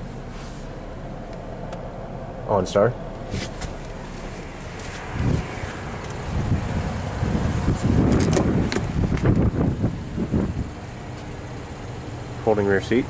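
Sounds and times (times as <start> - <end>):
wind rumble on microphone: 4.4 - 11.0.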